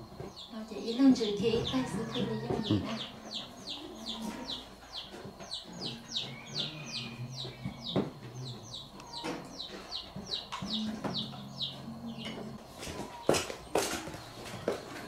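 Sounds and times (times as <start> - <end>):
chicks peeping: 0.0 - 15.0
hen clucking: 0.1 - 15.0.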